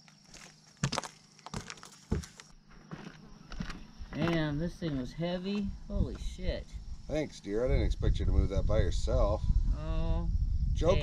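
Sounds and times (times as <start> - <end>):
footsteps: 0.0 - 6.4
crickets chirping: 0.0 - 11.0.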